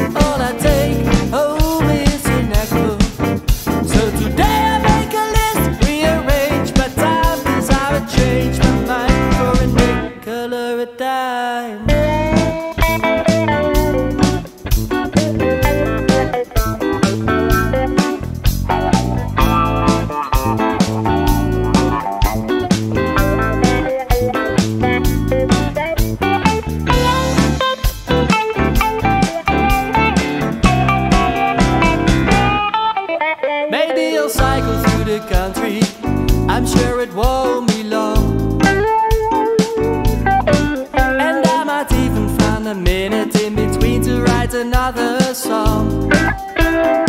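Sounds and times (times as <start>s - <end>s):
steady drum beat: 0.0s - 10.1s, 11.9s - 32.7s, 34.4s - 47.0s
bass guitar: 0.0s - 10.2s, 11.8s - 33.5s, 34.3s - 47.0s
lead guitar solo: 11.9s - 35.4s, 38.5s - 41.7s, 46.0s - 47.0s.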